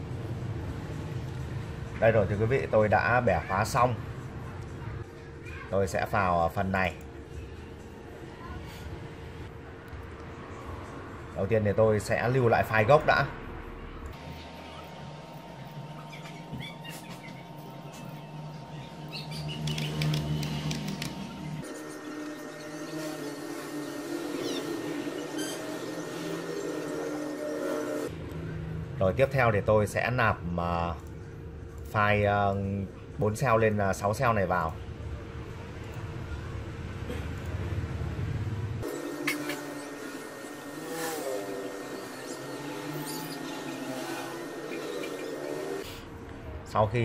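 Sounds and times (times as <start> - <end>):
engine note rising and falling: 12.2 - 29.0, 35.3 - 45.9.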